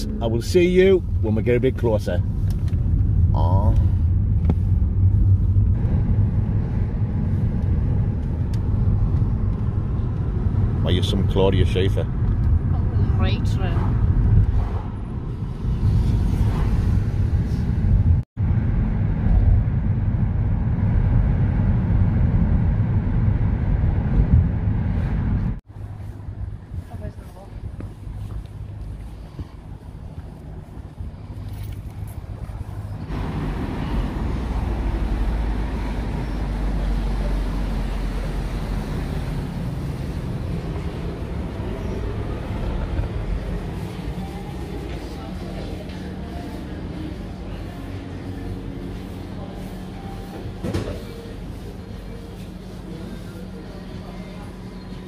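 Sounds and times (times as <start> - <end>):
car cabin road and engine rumble: 0.0 - 55.0
street ambience: 0.0 - 55.0.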